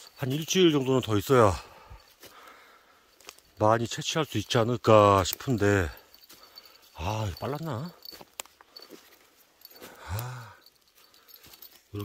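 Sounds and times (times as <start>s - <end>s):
man humming or sighing: 10.0s - 10.6s.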